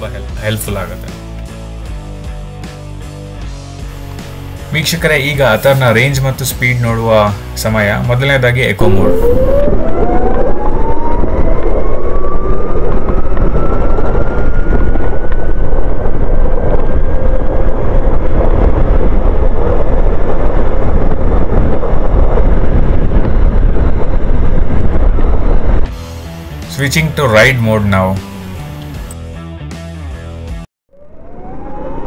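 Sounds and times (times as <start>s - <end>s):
wind rumble on microphone: 8.6s - 29.2s
electric motor whine: 8.8s - 26.8s, 28.2s - 29.2s.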